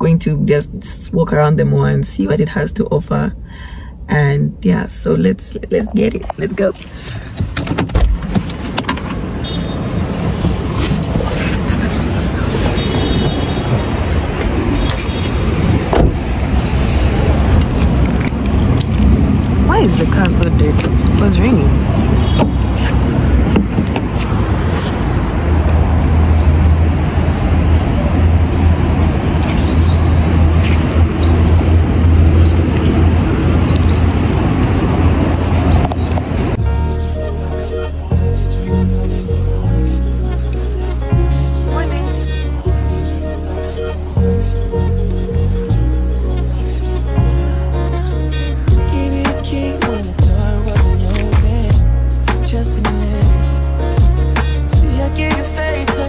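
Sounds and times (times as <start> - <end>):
distant traffic: 0.0 - 56.0
wind rumble: 1.9 - 36.9
rushing outdoor noise: 5.4 - 36.8
car door thumping shut: 15.9 - 16.3.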